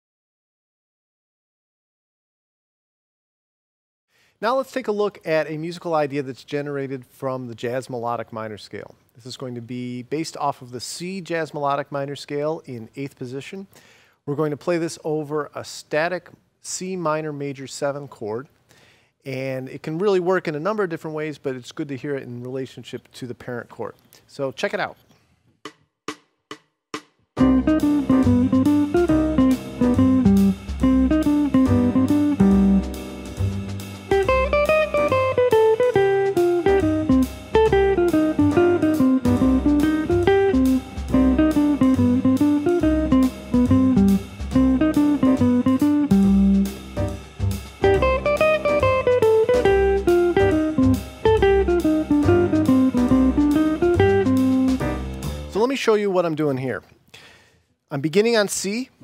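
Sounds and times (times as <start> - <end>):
backing track with drums: 25.6 - 55.6
jazz guitar picking single notes: 27.4 - 55.5.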